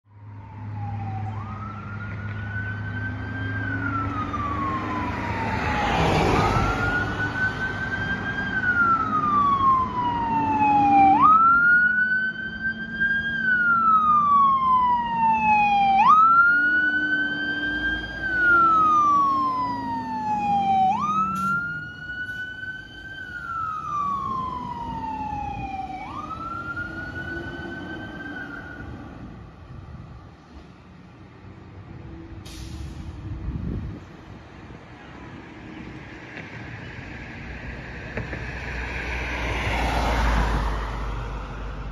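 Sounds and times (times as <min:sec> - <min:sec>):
fire engine siren wailing: 0:00.1 - 0:30.7, 0:35.8 - 0:41.9.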